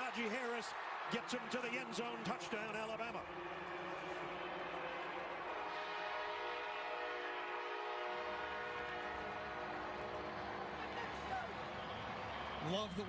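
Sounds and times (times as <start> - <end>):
crowd noise: 0.0 - 13.0
stadium horn blast: 5.2 - 10.4.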